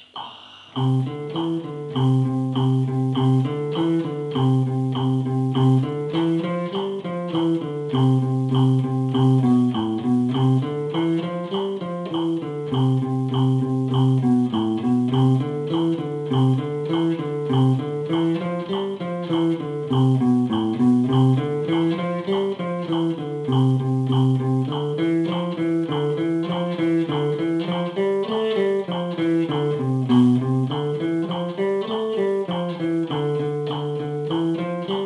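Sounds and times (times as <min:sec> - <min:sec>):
guitar single notes picked: 0:00.8 - 0:35.0.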